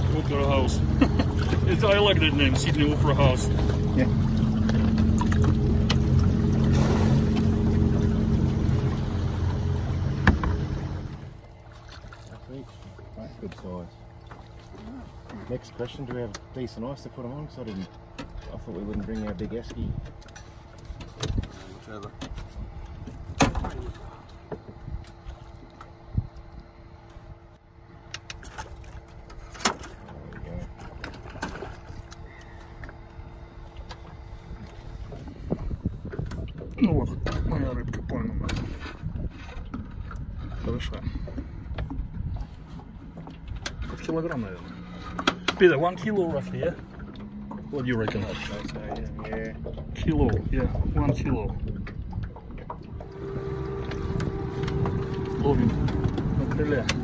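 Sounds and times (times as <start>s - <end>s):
low rumble: 0.0s - 15.5s, 30.2s - 57.0s
light knocks on boat: 10.1s - 10.8s.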